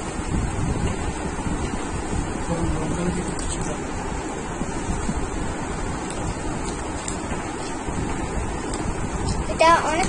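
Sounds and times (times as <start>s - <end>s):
wind rushing on microphone: 0.0s - 10.0s.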